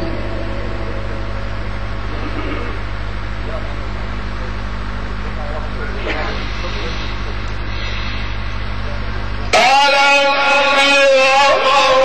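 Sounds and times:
low electrical hum: 0:00.0 - 0:12.0
man chanting recitation: 0:09.4 - 0:12.0.

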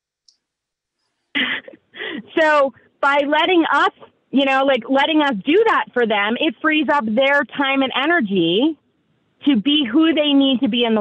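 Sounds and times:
person laughing breathily: 0:01.4 - 0:02.4.

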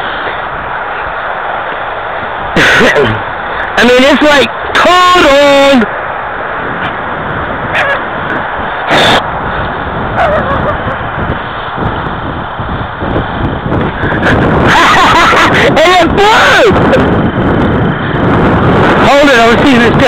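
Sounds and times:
wind buffeting microphone: 0:00.0 - 0:20.0
man laughing: 0:02.6 - 0:03.3, 0:10.1 - 0:11.2, 0:14.0 - 0:15.9.

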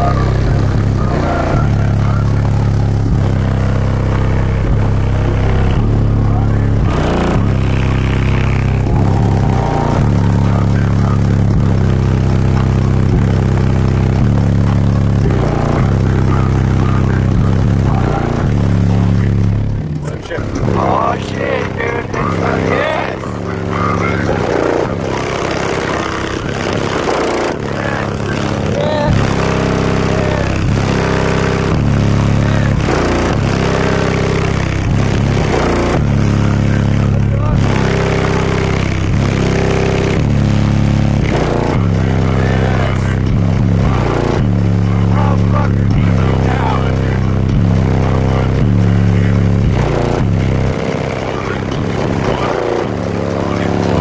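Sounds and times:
bass-heavy music from car subwoofers: 0:00.0 - 0:54.0
vocals: 0:00.0 - 0:54.0.

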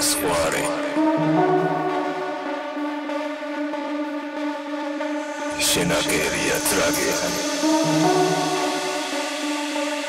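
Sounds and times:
sustained synthesizer tone: 0:00.0 - 0:10.0.

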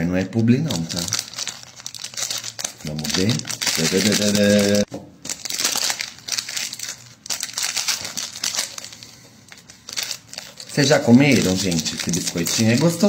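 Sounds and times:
plastic wrapper crinkling: 0:00.6 - 0:13.0.

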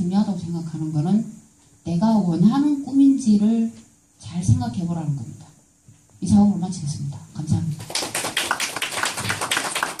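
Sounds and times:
audience applauding: 0:07.9 - 0:10.0.

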